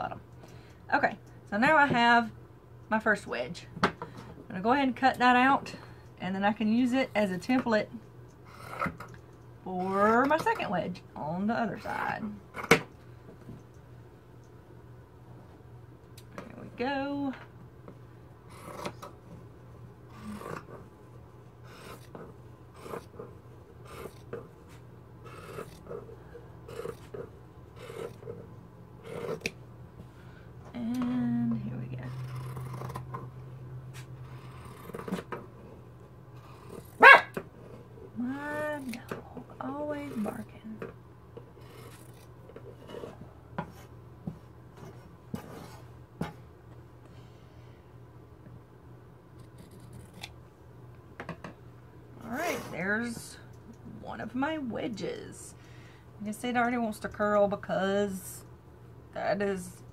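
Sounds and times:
scissors snipping fabric: 0:21.7 - 0:23.2, 0:23.8 - 0:24.4, 0:25.2 - 0:26.0, 0:27.8 - 0:28.3, 0:32.1 - 0:33.2.

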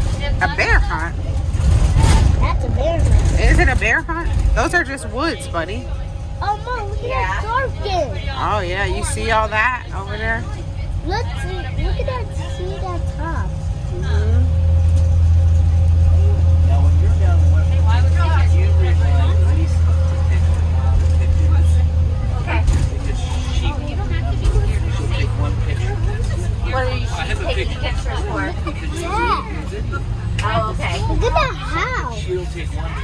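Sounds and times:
bus engine drone: 0:00.0 - 0:33.0
passengers chattering: 0:00.0 - 0:33.0.

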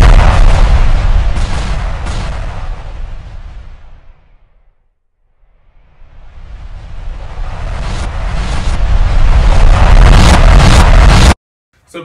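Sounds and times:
synthetic rumbling whoosh: 0:00.0 - 0:11.4.

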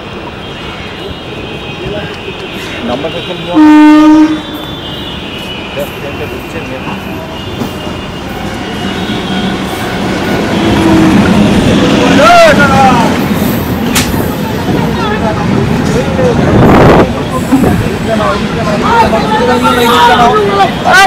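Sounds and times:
train rumbling past: 0:00.0 - 0:21.0
voices calling out: 0:09.5 - 0:21.0.

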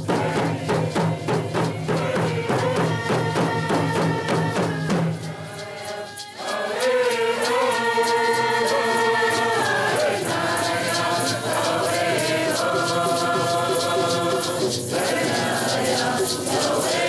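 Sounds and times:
hand drums beating: 0:00.0 - 0:17.0
men singing together: 0:00.0 - 0:17.0.

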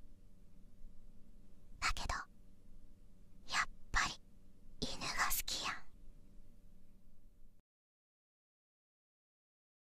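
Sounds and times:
person whispering: 0:01.8 - 0:02.3, 0:03.5 - 0:04.2, 0:04.8 - 0:05.9.

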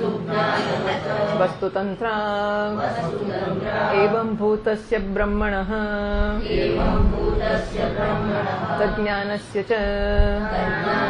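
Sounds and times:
group chanting together: 0:00.0 - 0:11.0.

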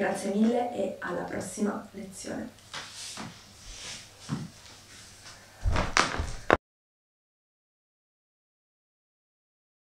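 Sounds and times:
barefoot footsteps on wooden floor: 0:02.8 - 0:06.6
low thumps: 0:05.6 - 0:06.6.

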